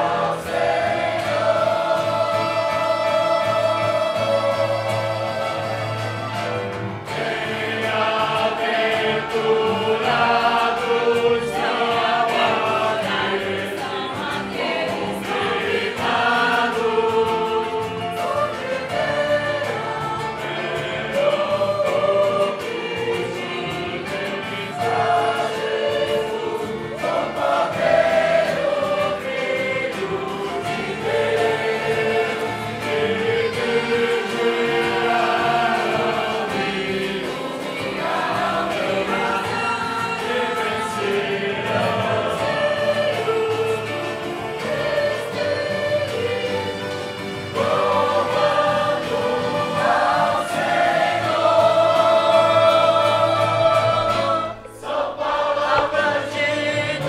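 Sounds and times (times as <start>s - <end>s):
choir singing a hymn: 0.0s - 57.0s.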